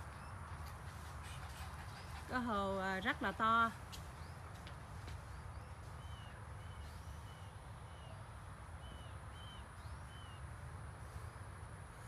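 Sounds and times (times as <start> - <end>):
small birds chirping: 0.0 - 10.6.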